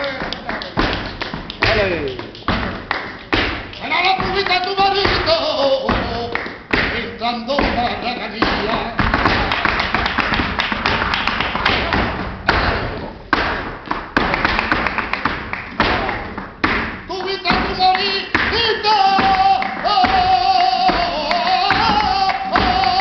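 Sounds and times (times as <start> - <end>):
rapid stamping footwork: 0.0 - 23.0.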